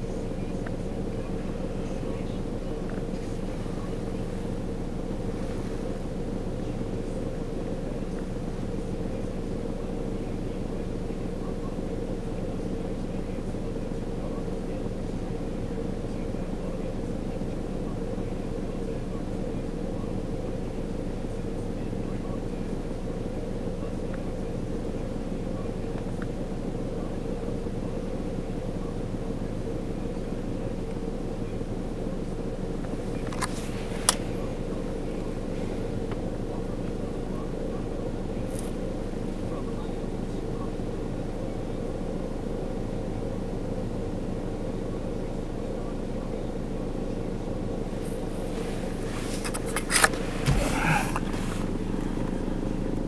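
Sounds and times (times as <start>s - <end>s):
vehicle engines rumbling: 0.0s - 53.0s.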